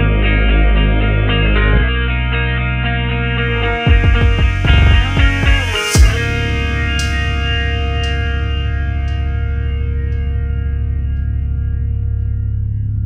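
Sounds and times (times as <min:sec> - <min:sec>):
effects-laden guitar chord: 0:00.0 - 0:13.0
steady bass: 0:00.0 - 0:13.0.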